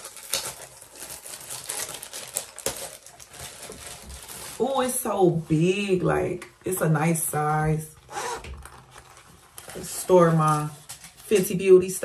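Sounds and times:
bag rustling: 0:00.0 - 0:05.8.

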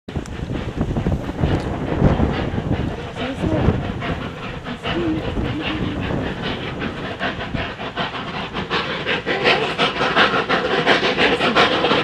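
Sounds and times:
steam locomotive chuffing: 0:00.1 - 0:12.0
wind buffeting microphone: 0:00.1 - 0:12.0.

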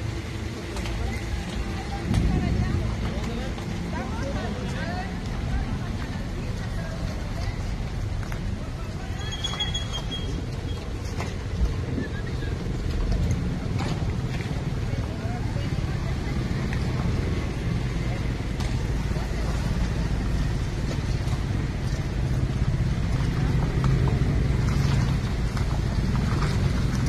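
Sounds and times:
cars passing: 0:00.0 - 0:27.0
indistinct voices of passers-by: 0:00.0 - 0:27.0
motorcycle: 0:00.0 - 0:27.0.

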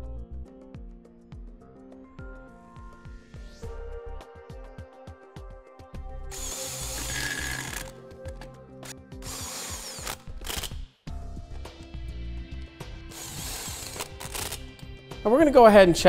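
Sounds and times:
impact wrench bursts: 0:06.3 - 0:08.0, 0:09.2 - 0:10.8, 0:13.1 - 0:14.7.

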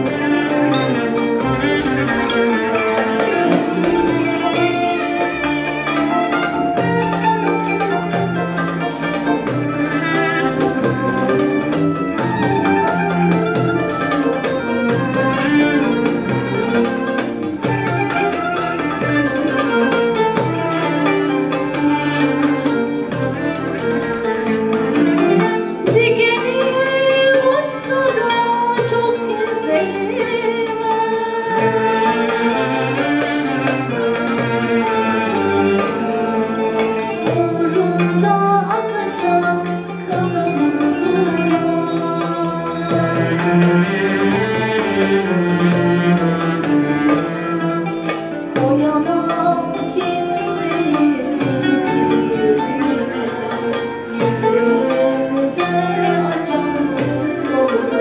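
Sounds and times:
kanun: 0:00.0 - 0:30.5
violin: 0:00.0 - 0:58.0
woman singing: 0:25.2 - 0:33.6, 0:37.0 - 0:45.2, 0:48.5 - 0:58.0.

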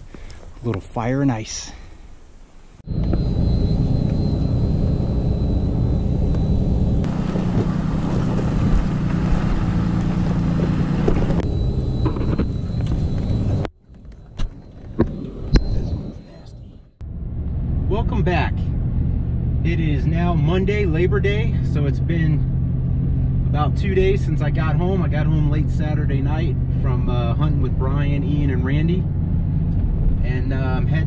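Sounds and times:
truck engine rumbling: 0:02.0 - 0:31.0.

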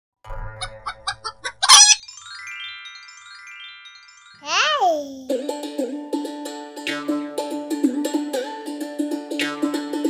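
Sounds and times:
chicken squawk: 0:01.0 - 0:02.0.

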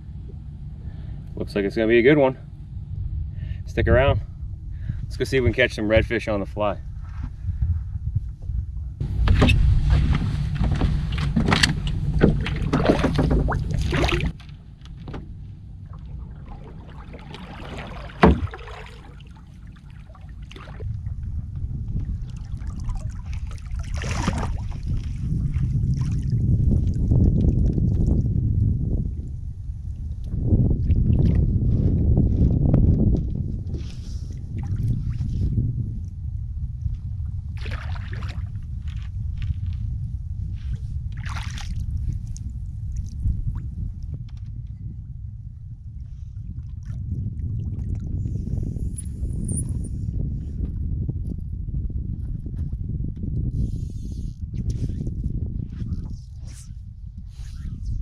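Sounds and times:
wind and water rumble on microphone: 0:00.0 - 0:58.0
push pole knocks and splashes: 0:09.2 - 0:15.3, 0:16.5 - 0:19.3, 0:22.8 - 0:25.2.

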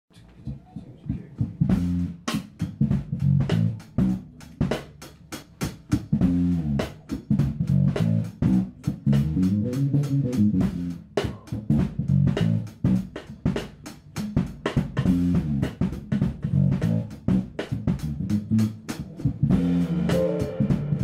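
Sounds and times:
bass line: 0:00.6 - 0:04.9, 0:06.0 - 0:13.6, 0:14.7 - 0:21.0
funk band playing: 0:01.4 - 0:21.0.

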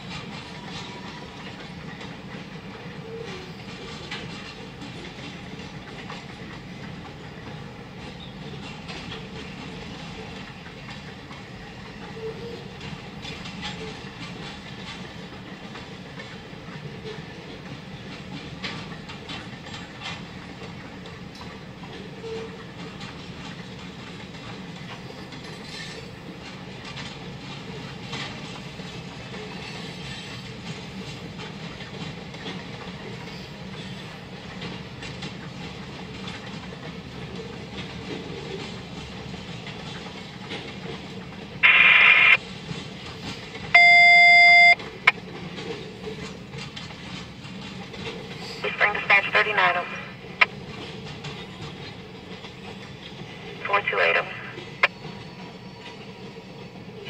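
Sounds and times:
wheel clickety-clack: 0:00.0 - 0:41.6, 0:42.4 - 0:43.8, 0:44.4 - 0:48.6, 0:50.2 - 0:53.6
freight train rolling past: 0:00.0 - 0:57.0
radio static burst: 0:41.6 - 0:42.4, 0:48.6 - 0:50.1, 0:53.6 - 0:54.9
radio voice: 0:41.6 - 0:42.4, 0:48.6 - 0:50.2, 0:53.6 - 0:54.9
brief electronic tone: 0:43.8 - 0:44.8.

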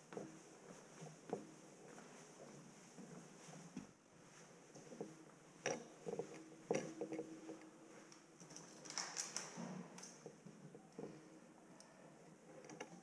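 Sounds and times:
bicycle knocks and clicks: 0:08.4 - 0:10.4.

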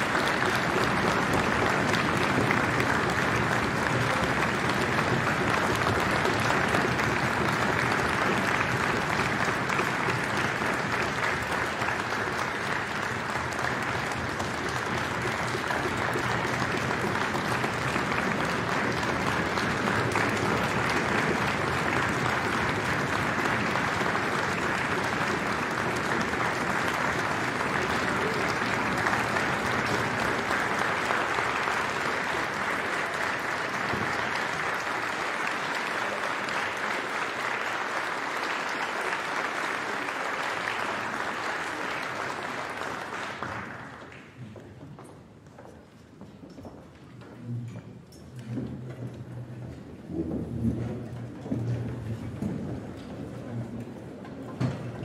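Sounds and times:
audience applauding: 0:00.0 - 0:44.8.

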